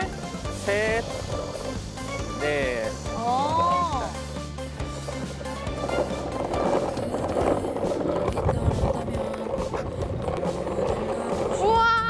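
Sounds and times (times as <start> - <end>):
background music: 0.0 - 12.0
longboard wheels rolling on tiles: 0.0 - 12.0.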